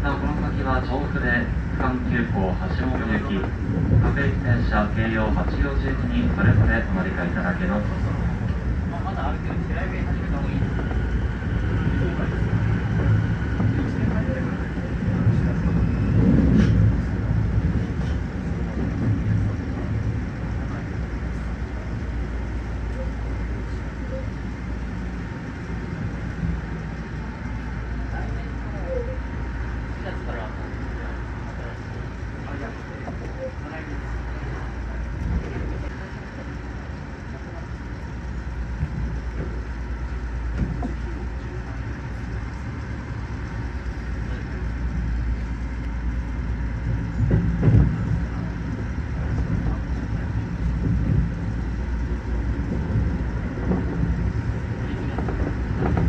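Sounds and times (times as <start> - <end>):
train wheels rumbling on rail: 0.0 - 56.0.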